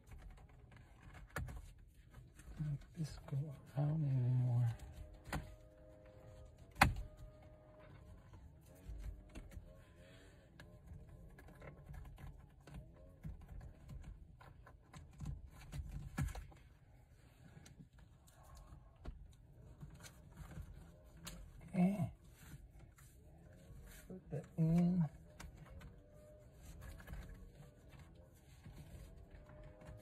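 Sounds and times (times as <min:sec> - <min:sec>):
cover rubbing on steering wheel: 0:00.0 - 0:18.4, 0:19.0 - 0:30.0.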